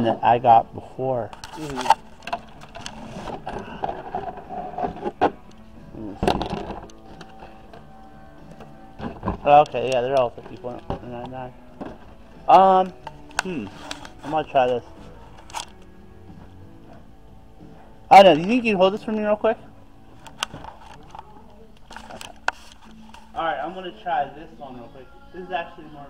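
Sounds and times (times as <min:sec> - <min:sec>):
faint background music: 0:00.0 - 0:26.0
phone handling rustling: 0:01.3 - 0:07.9, 0:12.9 - 0:15.9, 0:20.1 - 0:23.4.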